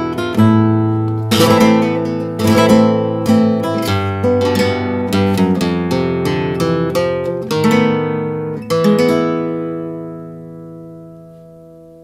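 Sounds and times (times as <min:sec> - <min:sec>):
classical guitar chord ringing: 0:00.0 - 0:12.0.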